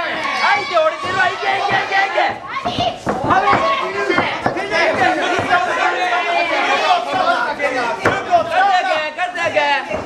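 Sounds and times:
crowd shouting and talking: 0.0s - 10.0s.

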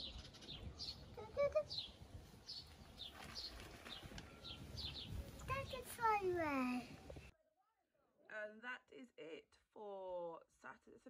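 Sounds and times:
small bird chirping: 0.0s - 6.1s.

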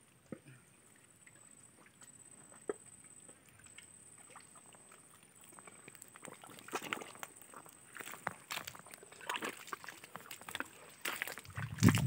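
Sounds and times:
small water splashes: 0.3s - 12.0s
wet squelches in mud: 1.8s - 12.0s.

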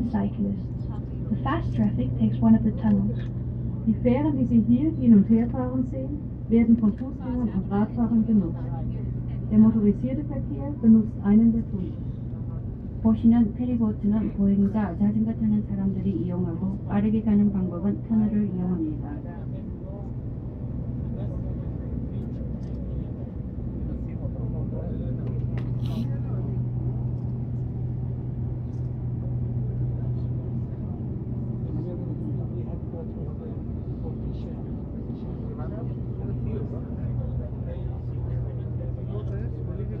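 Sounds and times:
boat engine humming: 0.0s - 40.0s.

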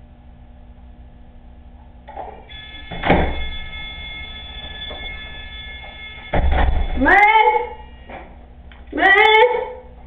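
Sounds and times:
steady high tone: 2.4s - 8.5s
door thunk: 2.9s - 3.5s, 6.3s - 7.0s.

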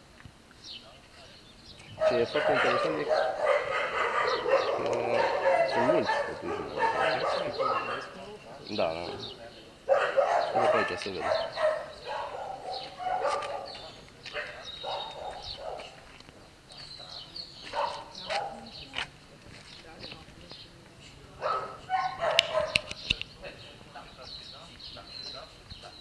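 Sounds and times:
distant indistinct conversation: 0.4s - 26.0s
dogs barking: 1.9s - 18.9s, 21.3s - 23.2s.

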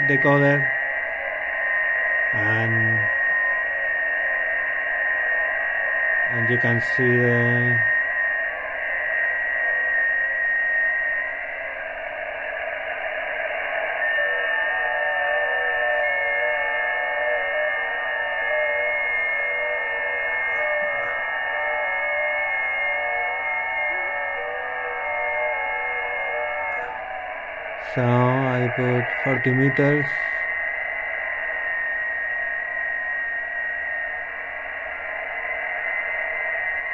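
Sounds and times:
digital signal tones: 0.0s - 0.7s, 2.3s - 3.1s, 6.3s - 7.9s, 27.8s - 30.5s
radio hiss: 0.0s - 36.9s.

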